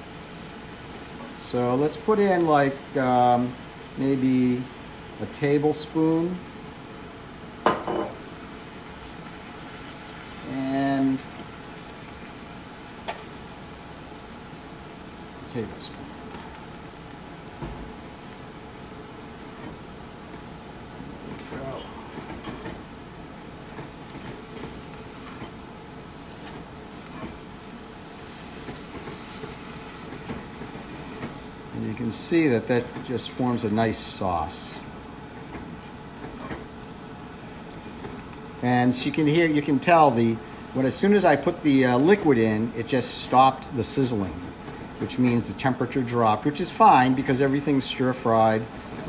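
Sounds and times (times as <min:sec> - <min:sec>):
low sizzle: 0:00.0 - 0:49.0.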